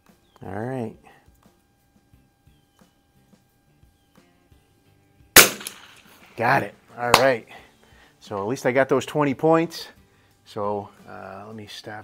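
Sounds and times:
rifle shot: 0:05.4 - 0:06.3.

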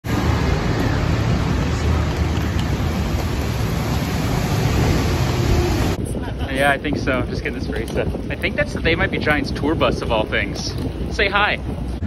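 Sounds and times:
traffic on wet street: 0:00.0 - 0:06.0.

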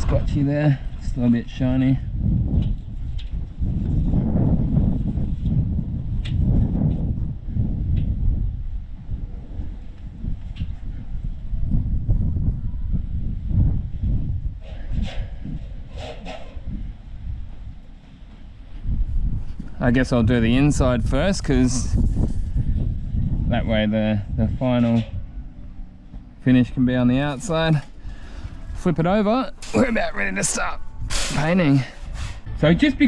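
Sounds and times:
wind on microphone: 0:00.0 - 0:33.0.

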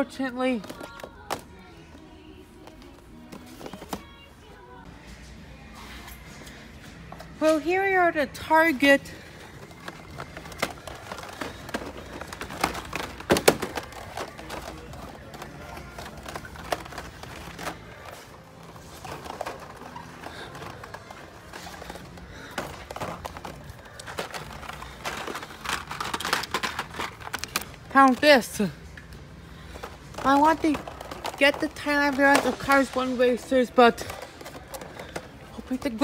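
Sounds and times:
quiet background music: 0:00.0 - 0:36.0
plastic packaging clicks and crinkles: 0:09.2 - 0:36.0.

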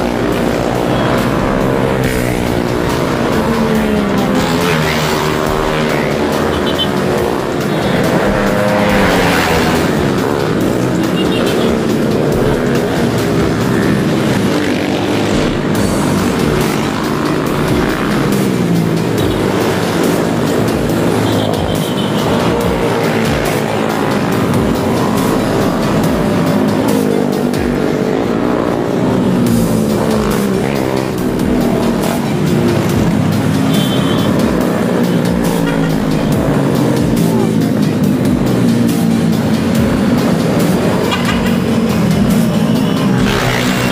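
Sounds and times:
motorcycles revving past: 0:00.0 - 0:43.9.

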